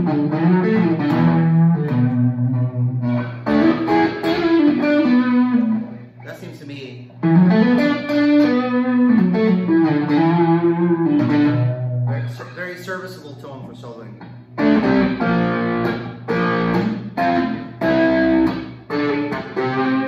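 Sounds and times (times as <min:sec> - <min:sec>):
electric guitar lead lines: 0:00.0 - 0:20.0.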